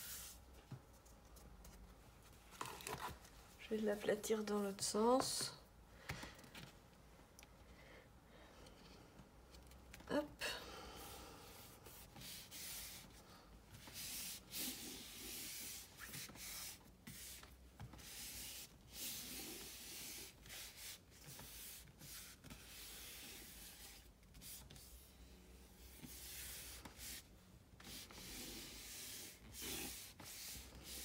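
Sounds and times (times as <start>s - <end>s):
hands rubbing over paper: 11.5s - 13.2s.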